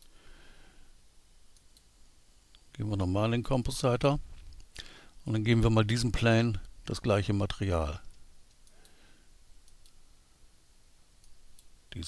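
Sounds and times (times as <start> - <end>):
computer mouse clicks: 9.6 - 10.0.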